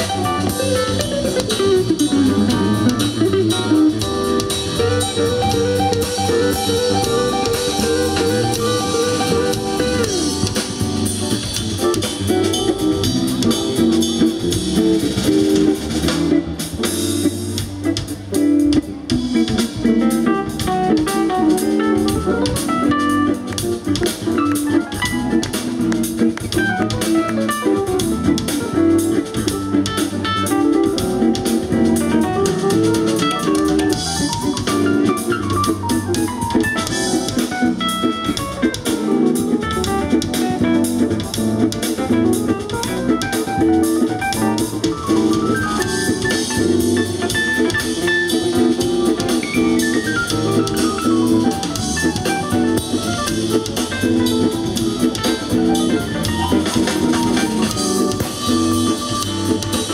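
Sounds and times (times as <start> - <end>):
drum kit: 0.0 - 59.9
electric guitar: 0.0 - 59.9
keyboards: 0.0 - 59.9.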